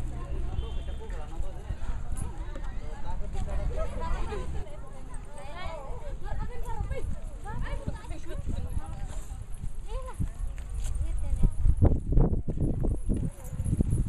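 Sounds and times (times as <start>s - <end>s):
women chattering and calling out: 0.0s - 1.1s, 1.7s - 13.6s.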